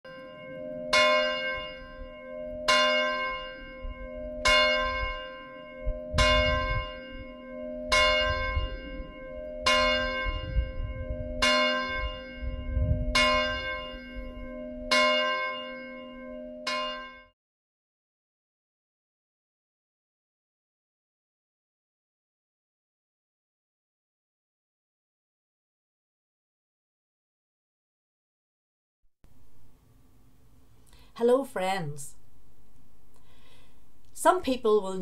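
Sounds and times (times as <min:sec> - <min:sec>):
bell striking and ringing: 0:00.1 - 0:17.3.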